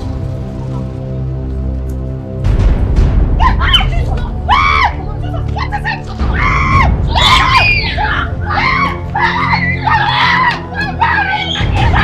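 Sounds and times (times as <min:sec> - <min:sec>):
background music: 0:00.0 - 0:12.0
woman screaming: 0:03.4 - 0:05.0, 0:06.2 - 0:12.0.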